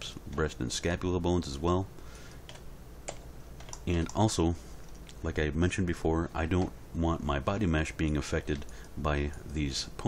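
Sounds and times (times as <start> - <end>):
low steady hum: 0.0 - 10.0
computer keys clicking: 2.5 - 4.2, 8.0 - 9.6.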